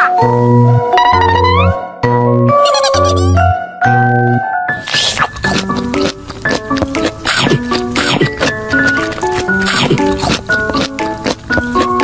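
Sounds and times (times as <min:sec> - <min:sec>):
background music: 0:00.0 - 0:12.0
biting and chewing: 0:04.8 - 0:12.0.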